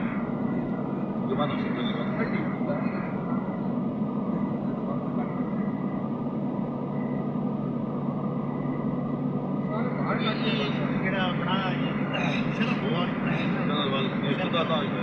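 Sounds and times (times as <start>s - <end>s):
car road and engine noise: 0.0s - 15.0s.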